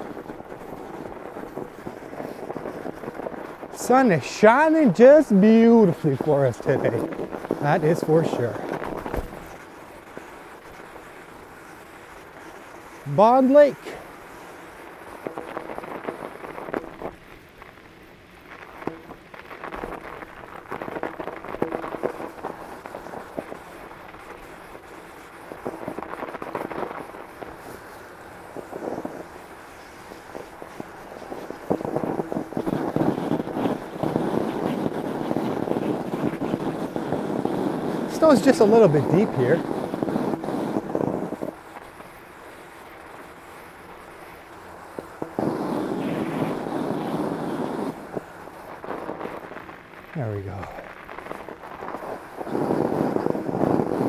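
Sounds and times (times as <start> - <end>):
wind on microphone: 0.0 - 14.4, 19.7 - 42.2, 44.9 - 54.0
bike tyres crunching snow: 0.0 - 54.0.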